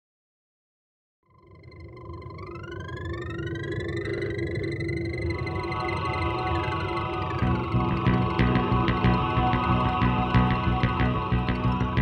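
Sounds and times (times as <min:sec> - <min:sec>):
synthesizer pitch glides: 0:01.3 - 0:12.0
low rumbling drone: 0:02.0 - 0:12.0.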